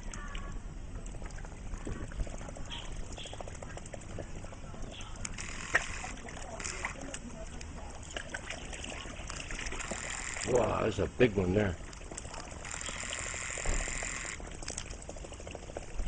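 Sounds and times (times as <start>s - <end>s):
fish gulping at surface: 0.0s - 16.0s
pond water splashing: 0.0s - 16.0s.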